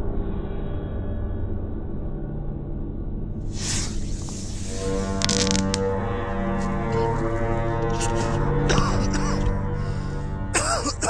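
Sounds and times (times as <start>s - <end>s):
hiss: 3.5s - 5.6s
sharp crackles: 3.5s - 7.6s.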